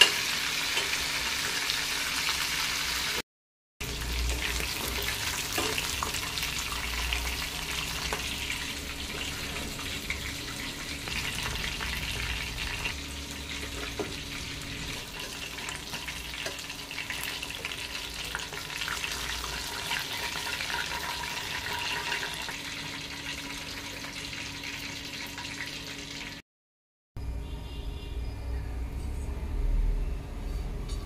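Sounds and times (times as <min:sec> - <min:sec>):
chicken deep-frying in oil: 0:00.0 - 0:03.2, 0:03.8 - 0:26.4.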